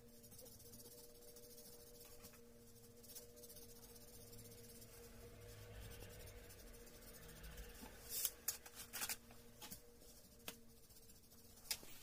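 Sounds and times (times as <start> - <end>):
pencil scratching on card: 0.0 - 9.1.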